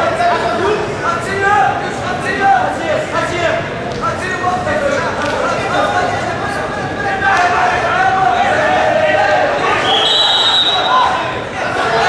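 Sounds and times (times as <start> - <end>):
people shouting: 7.0 - 12.0
referee's whistle: 9.8 - 11.1.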